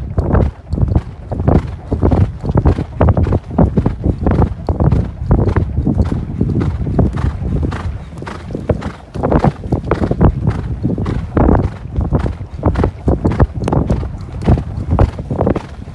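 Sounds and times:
hoofbeats thudding in sand: 0:00.0 - 0:15.9.

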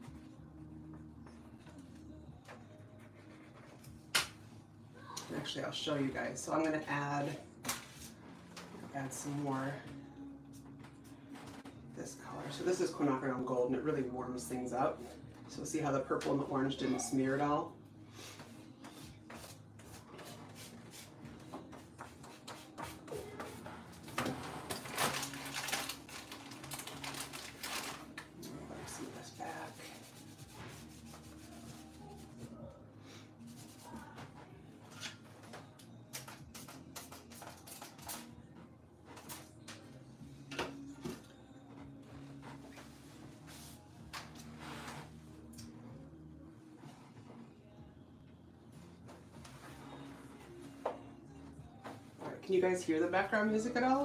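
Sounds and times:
quiet background music: 0:00.0 - 0:54.0
sponge dabbing on paper: 0:29.3 - 0:32.4.

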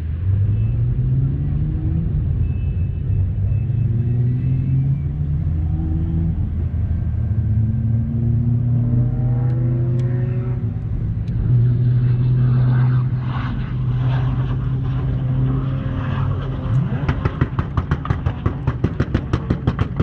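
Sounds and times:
engines droning and revving: 0:00.0 - 0:20.0.

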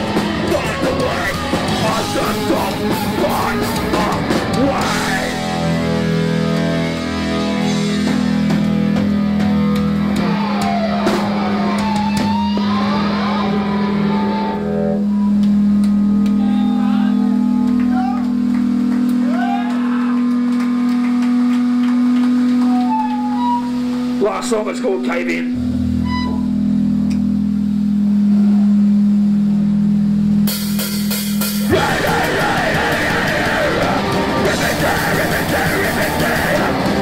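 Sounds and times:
electric guitar and bass drone: 0:00.0 - 0:37.0
people shouting: 0:00.3 - 0:05.8, 0:16.3 - 0:18.5, 0:19.2 - 0:20.4, 0:31.6 - 0:37.0.

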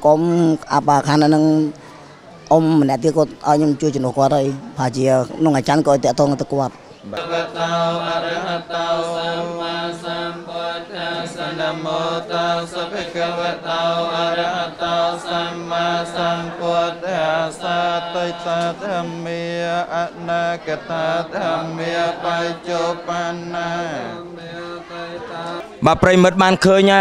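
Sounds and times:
monks chanting in unison: 0:07.0 - 0:27.0.

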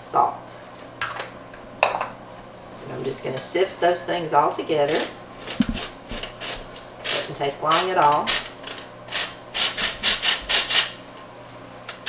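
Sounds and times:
flour sifter rasping: 0:02.8 - 0:10.8.

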